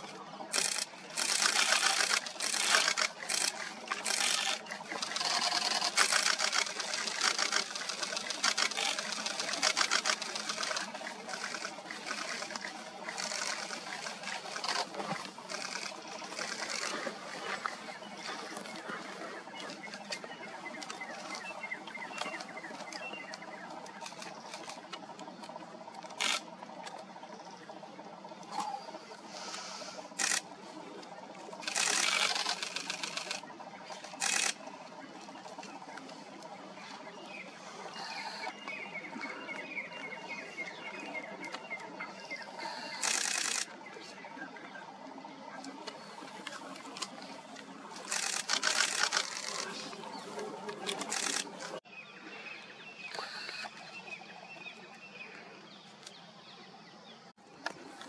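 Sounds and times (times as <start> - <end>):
camera shutters clicking: 0.5 - 12.6, 34.1 - 34.6, 42.9 - 43.7, 48.0 - 49.7, 50.8 - 51.7.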